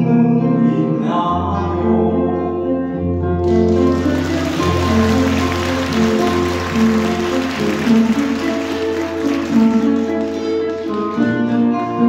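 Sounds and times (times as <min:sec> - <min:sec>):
instrumental guitar music: 0:02.1 - 0:12.0
audience applause: 0:03.4 - 0:11.6.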